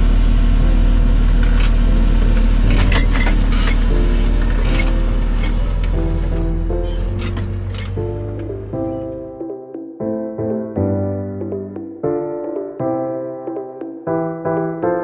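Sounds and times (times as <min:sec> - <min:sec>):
tractor engine running: 0:00.0 - 0:09.5
piano music: 0:00.0 - 0:15.0.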